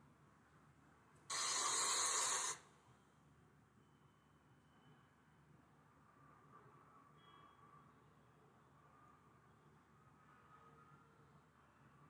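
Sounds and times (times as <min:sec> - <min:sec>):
burst of steady hiss: 0:01.3 - 0:02.6.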